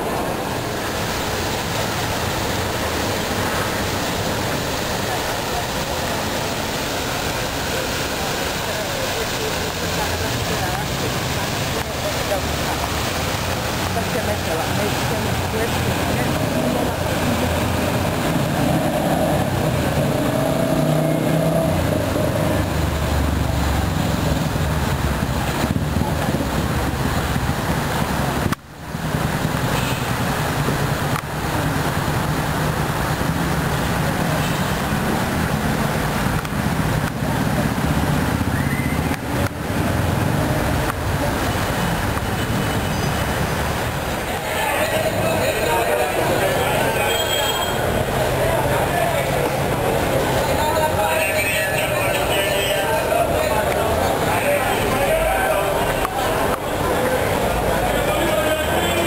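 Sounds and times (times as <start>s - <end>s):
indistinct voices: 0.0s - 28.4s, 34.0s - 59.0s
road traffic: 0.0s - 59.0s.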